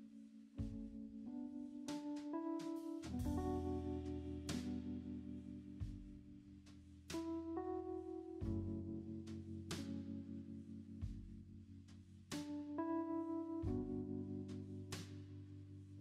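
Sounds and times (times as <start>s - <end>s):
low held bass: 3.1s - 7.5s.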